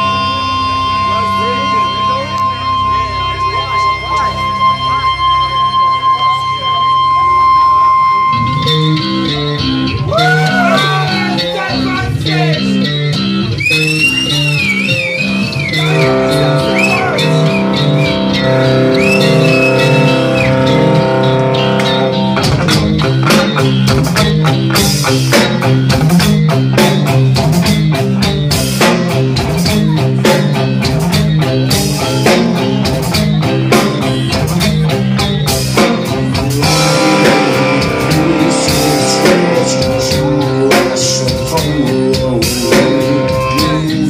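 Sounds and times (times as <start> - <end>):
electric guitar bending: 0.0 - 44.0
rock band playing: 0.0 - 44.0
drum kit: 8.3 - 44.0.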